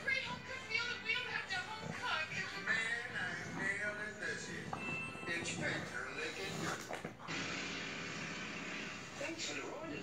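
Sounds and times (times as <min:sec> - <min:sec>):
dogs playing: 0:00.0 - 0:10.0
television speech: 0:00.0 - 0:10.0.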